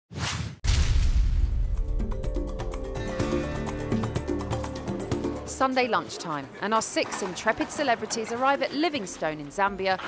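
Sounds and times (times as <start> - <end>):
deep impact hit with rumble: 0.6 - 1.9.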